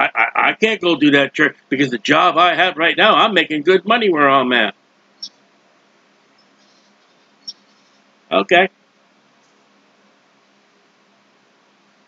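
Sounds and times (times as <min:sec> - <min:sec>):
room hiss and hum: 0:00.0 - 0:12.0.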